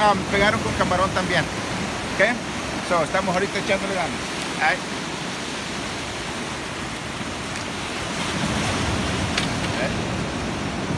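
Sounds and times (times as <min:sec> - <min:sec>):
surf breaking over rocks: 0:00.0 - 0:10.9
wind buffeting microphone: 0:03.5 - 0:10.9.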